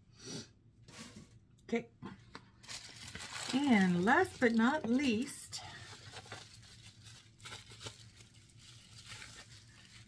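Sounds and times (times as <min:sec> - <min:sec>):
packaging rustling and crinkling: 0:02.6 - 0:10.0.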